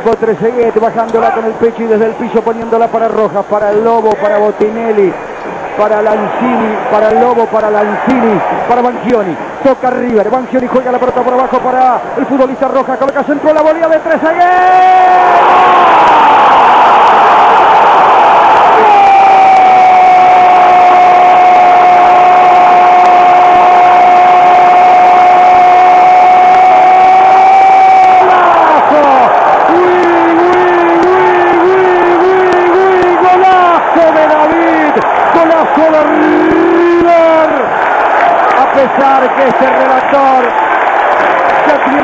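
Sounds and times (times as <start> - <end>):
stadium crowd cheering: 0.0 - 42.0
commentator shouting goal: 26.3 - 37.7.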